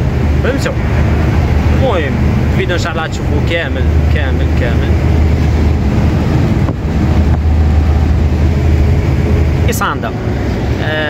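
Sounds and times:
road and wind noise: 0.0 - 11.0
truck diesel engine droning: 0.0 - 11.0.

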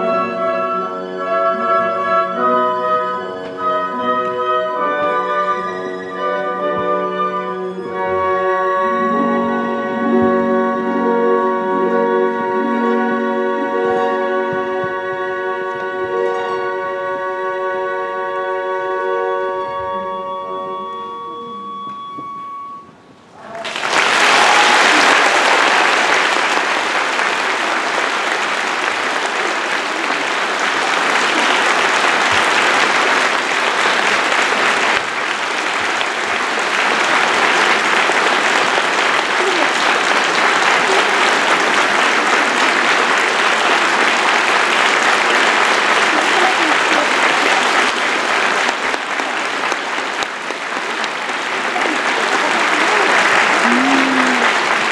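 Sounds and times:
music: 0.0 - 23.2, 29.9 - 54.9
audience applauding: 23.5 - 54.9
brief shouts: 53.6 - 54.7.

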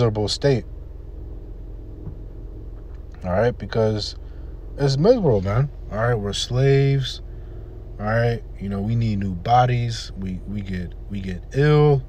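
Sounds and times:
low background rumble and hum: 0.0 - 12.0.

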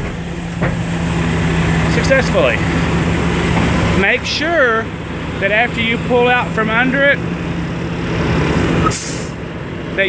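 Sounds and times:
diesel engine idling: 0.0 - 10.0
air brake hiss: 8.8 - 9.4.

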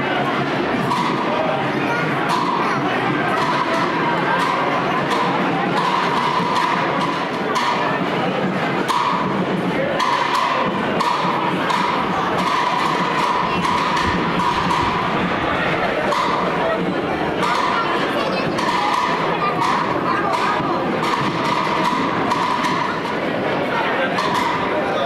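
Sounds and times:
crowd talking in echoing hall: 0.0 - 25.0
knocks and thumps: 2.3 - 23.4, 24.0 - 24.8.

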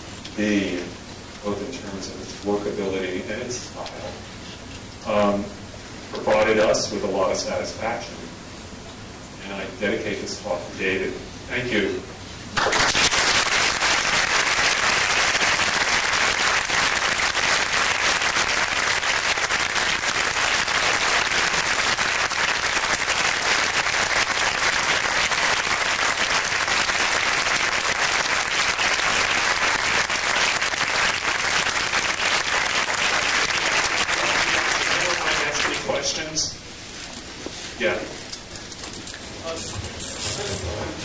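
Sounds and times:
audience applauding: 12.6 - 35.8.

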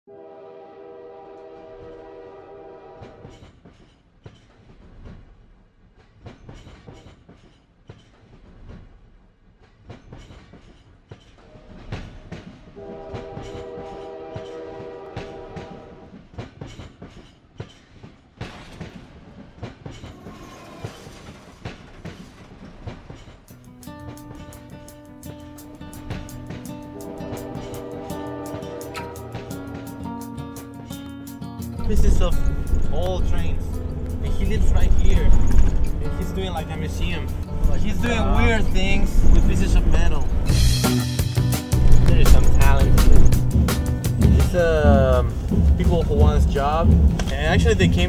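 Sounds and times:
train horn chord: 0.1 - 3.3, 11.5 - 16.1, 24.3 - 39.4
wheels clattering on rail joints: 3.1 - 31.0, 31.6 - 48.0.

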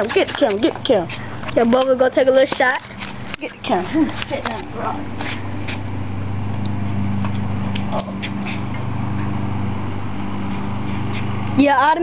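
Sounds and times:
garage door motor hum: 0.0 - 12.0.

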